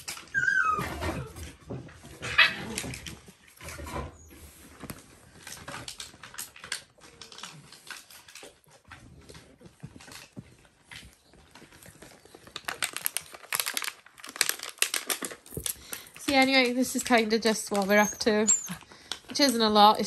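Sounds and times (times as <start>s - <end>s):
puppies rustling on bedding: 0.0s - 15.1s, 16.1s - 20.0s.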